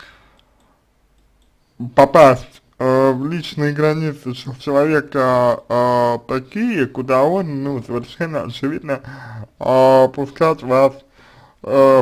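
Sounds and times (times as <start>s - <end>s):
mouth click: 0.3s - 1.6s
man's voice: 1.8s - 11.0s, 11.6s - 12.0s.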